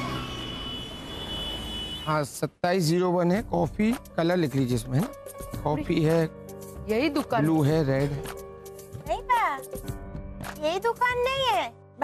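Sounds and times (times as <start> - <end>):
passing vehicles: 0.0 - 2.0.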